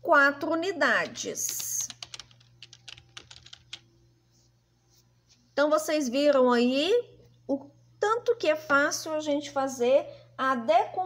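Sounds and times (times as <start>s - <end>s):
keyboard keys clicking: 1.0s - 3.8s.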